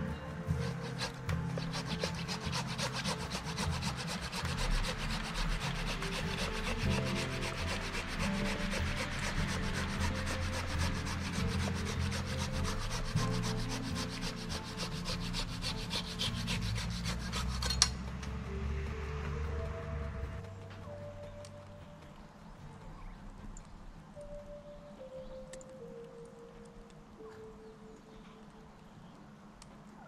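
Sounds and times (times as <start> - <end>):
hand saw rasping through branch: 0.0 - 18.0.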